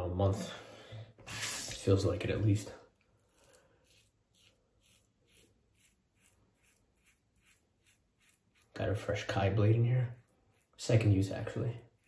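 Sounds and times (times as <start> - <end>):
razor scraping stubble: 1.3 - 12.0.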